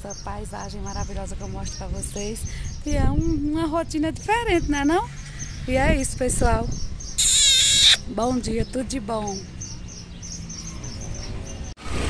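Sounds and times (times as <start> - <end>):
low traffic rumble: 0.0 - 7.2, 8.0 - 12.0
bird chirping: 6.7 - 11.8.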